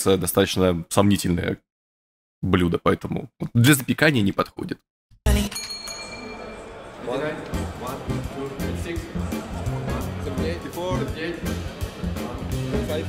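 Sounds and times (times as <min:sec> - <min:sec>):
bass: 0:07.6 - 0:13.0
steady drum beat: 0:07.6 - 0:13.0.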